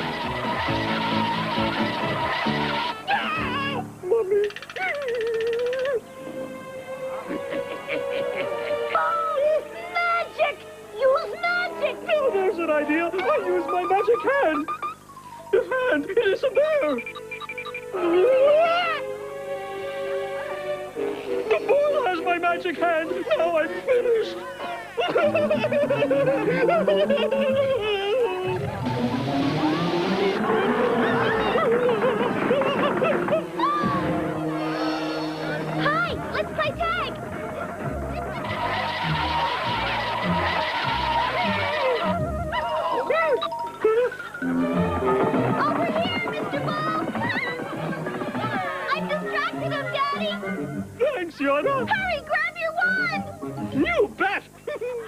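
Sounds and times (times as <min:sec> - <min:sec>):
wavering cry rising in pitch: 0:00.0 - 0:03.8, 0:16.8 - 0:19.2, 0:24.4 - 0:50.9
cartoon background music: 0:00.0 - 0:55.0
rushing noise: 0:28.6 - 0:36.4.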